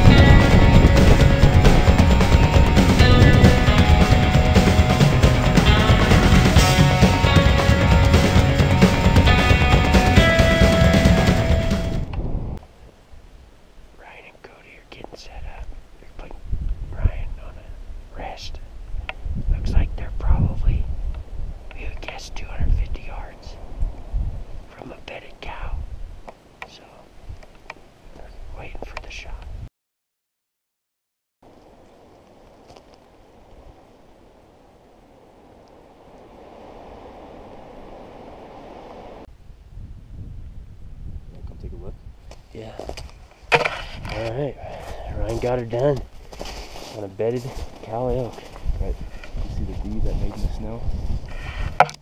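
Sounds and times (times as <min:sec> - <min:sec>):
wind buffeting microphone: 0:00.0 - 0:12.6, 0:15.6 - 0:24.7, 0:25.5 - 0:26.3, 0:33.2 - 0:52.0
hushed whispering: 0:14.0 - 0:18.6, 0:19.6 - 0:20.9, 0:21.7 - 0:23.6, 0:24.7 - 0:25.8, 0:26.7 - 0:27.1, 0:28.2 - 0:29.6.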